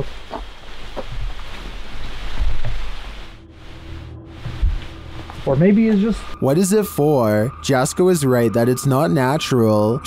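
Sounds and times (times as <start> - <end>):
rustling in undergrowth: 0.0 - 6.4
wind rumbling on microphone: 0.0 - 6.4
steady low hum: 0.0 - 10.0.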